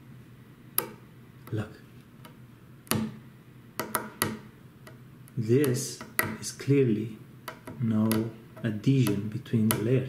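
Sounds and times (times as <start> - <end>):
thumbnail clicking on racquet frame: 0.8 - 1.6, 2.2 - 3.2, 3.8 - 6.5, 7.4 - 10.0.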